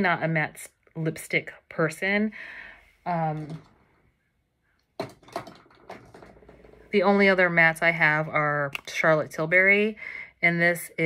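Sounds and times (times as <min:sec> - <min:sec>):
small objects clicking and knocking: 0:05.0 - 0:06.7.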